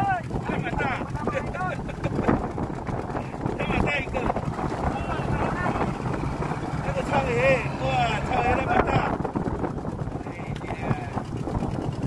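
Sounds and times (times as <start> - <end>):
wind and water rumble: 0.0 - 12.0.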